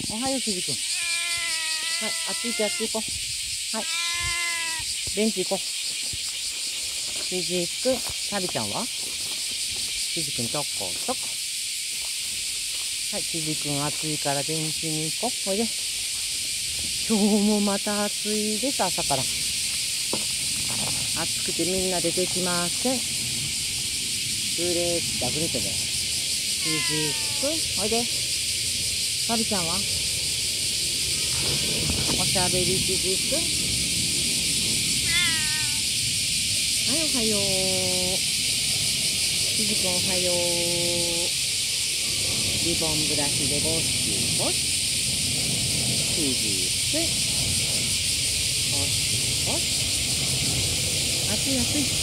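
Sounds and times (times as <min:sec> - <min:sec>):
cicadas chorus: 0:00.0 - 0:52.0
cat meowing: 0:00.8 - 0:03.0, 0:03.8 - 0:04.9, 0:26.6 - 0:27.6, 0:35.0 - 0:35.9.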